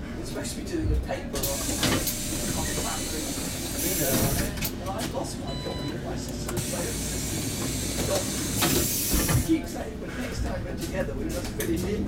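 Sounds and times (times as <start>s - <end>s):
voices talking: 0.4s - 12.0s
bus compressed air hiss: 1.4s - 4.5s, 6.6s - 9.6s.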